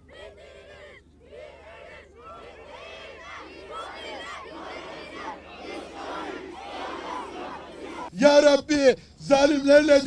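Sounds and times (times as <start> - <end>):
large crowd shouting: 0.1 - 8.2.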